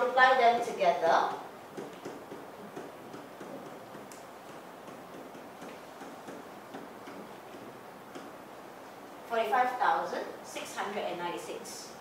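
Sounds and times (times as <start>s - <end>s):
pen tapping on whiteboard: 1.7s - 8.4s.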